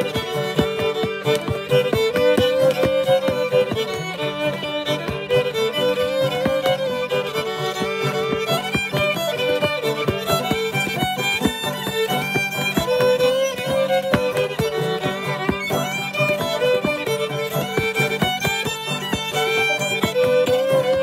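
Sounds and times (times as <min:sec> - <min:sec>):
banjo strumming: 0:00.0 - 0:21.0
fiddle melody: 0:00.0 - 0:21.0
shoes tapping on wooden board: 0:00.0 - 0:21.0.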